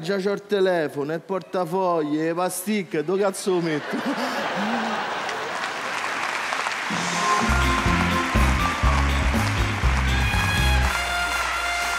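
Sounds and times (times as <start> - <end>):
audience applause: 4.1 - 11.9
live band groove: 6.9 - 11.9.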